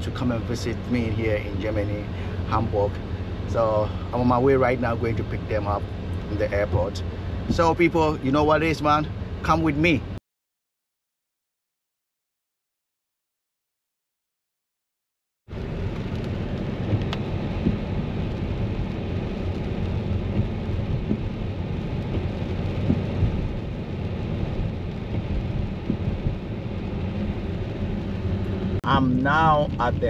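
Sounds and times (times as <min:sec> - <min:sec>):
car driving on wet road: 0:00.0 - 0:10.2, 0:15.5 - 0:30.0.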